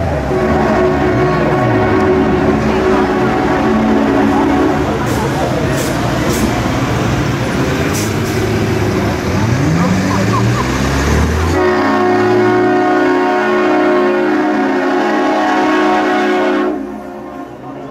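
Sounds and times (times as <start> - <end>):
engine revving: 0.0 - 12.8
vehicles passing: 0.0 - 17.9
multi-note air horn: 0.2 - 5.2, 11.5 - 17.8.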